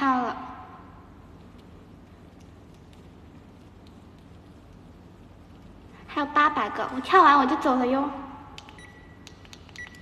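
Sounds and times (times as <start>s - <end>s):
woman's voice: 0.0s - 0.6s, 6.0s - 8.4s.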